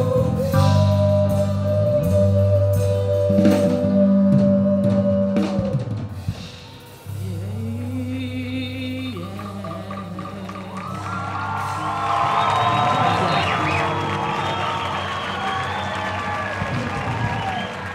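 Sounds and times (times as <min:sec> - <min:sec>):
live band holding final chord: 0:00.0 - 0:17.9
audience cheering and applauding: 0:09.4 - 0:17.9.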